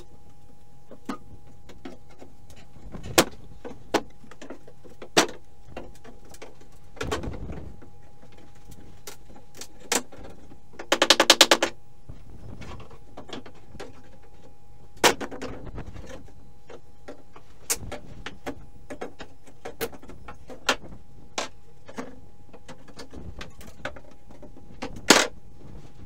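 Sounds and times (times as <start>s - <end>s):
knocks of wood and metal: 0.9s - 11.8s, 12.5s - 25.4s.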